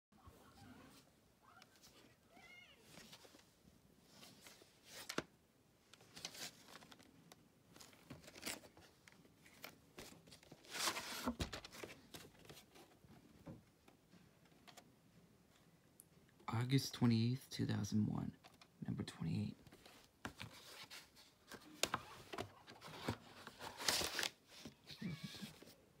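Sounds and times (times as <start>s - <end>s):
cat meowing: 24.8s - 25.6s.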